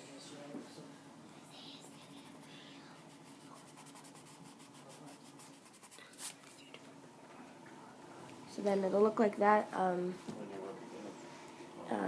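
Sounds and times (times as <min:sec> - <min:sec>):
pencil rubbing on paper: 0:02.0 - 0:06.5.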